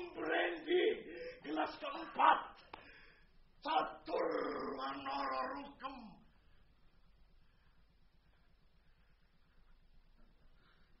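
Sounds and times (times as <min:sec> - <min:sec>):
man making wordless cries: 0:00.0 - 0:02.6, 0:03.6 - 0:06.3.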